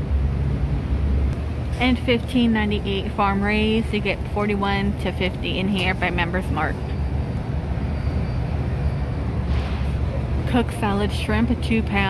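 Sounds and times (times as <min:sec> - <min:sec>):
low background rumble: 0:00.0 - 0:12.0.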